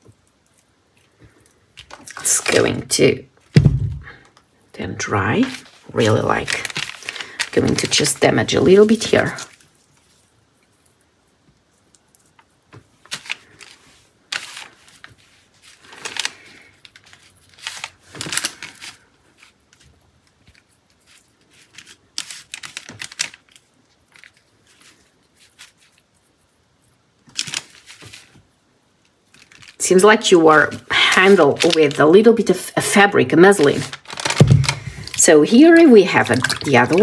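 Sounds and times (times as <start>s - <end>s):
wet paper crinkling and tearing: 0.0s - 4.3s, 5.0s - 37.0s.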